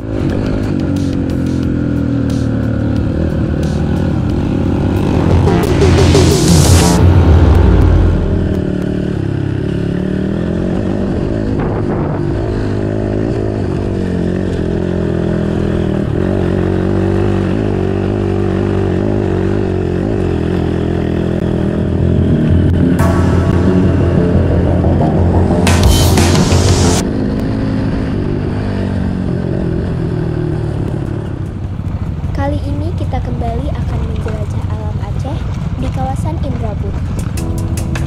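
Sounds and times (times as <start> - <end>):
dirt bike engine revving: 0.0 - 23.2.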